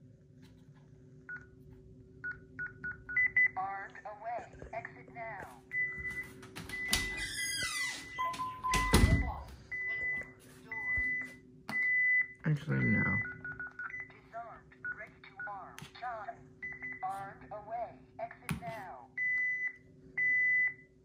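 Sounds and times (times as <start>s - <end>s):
alarm panel beep tone: 5.7s - 7.3s, 8.0s - 14.1s
door opening and shutting: 6.5s - 9.5s
recorded voice announcement: 12.4s - 13.3s, 17.0s - 19.1s.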